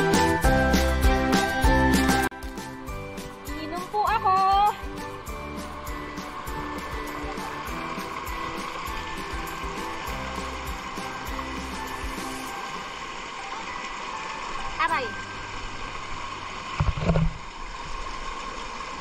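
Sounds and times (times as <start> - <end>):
background music with steady beat: 0.0 - 13.4
stream rushing over rocks: 4.4 - 19.0.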